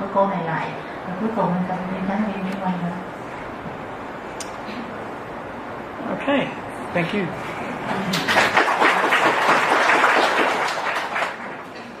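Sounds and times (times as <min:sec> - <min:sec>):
audience applauding: 0:07.9 - 0:12.0.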